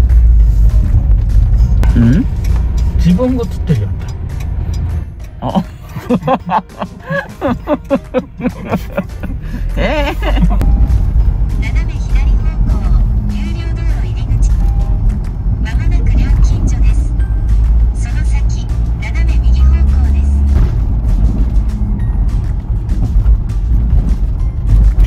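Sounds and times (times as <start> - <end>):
background music: 0.0 - 25.0
vehicle engine and road rumble: 0.0 - 25.0.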